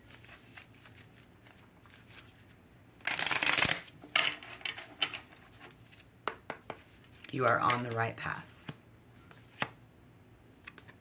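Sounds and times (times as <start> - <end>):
cards being shuffled: 0.0 - 9.8, 10.6 - 11.0.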